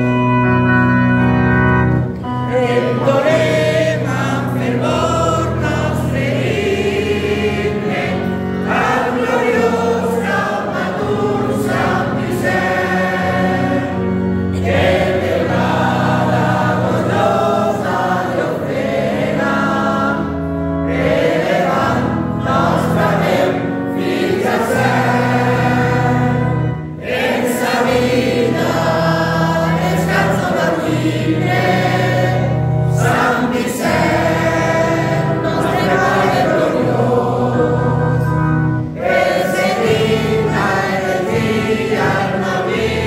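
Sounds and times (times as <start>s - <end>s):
congregation singing a hymn: 0.0s - 43.0s
organ chords: 0.0s - 43.0s.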